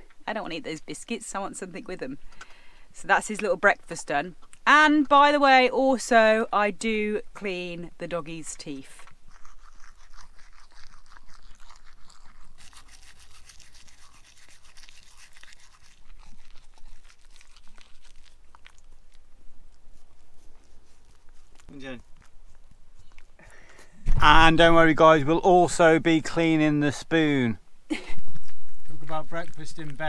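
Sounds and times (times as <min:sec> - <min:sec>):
toothbrush scrubbing teeth: 0:08.9 - 0:23.4.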